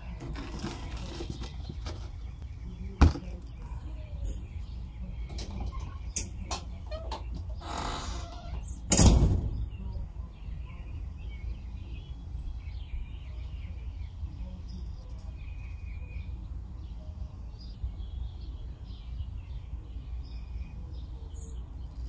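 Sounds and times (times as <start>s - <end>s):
faint bird chirps: 1.3s - 8.9s, 9.5s - 22.0s
plastic jug thump: 3.0s - 3.4s.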